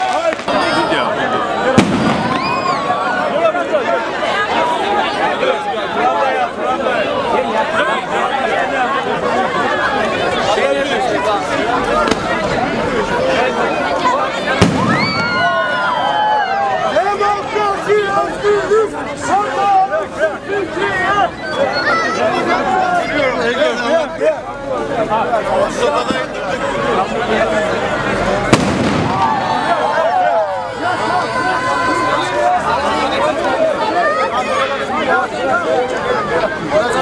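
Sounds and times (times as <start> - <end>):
crowd chattering: 0.0 - 37.0
firework shell bang: 1.8 - 2.6, 14.6 - 15.4, 28.5 - 29.5.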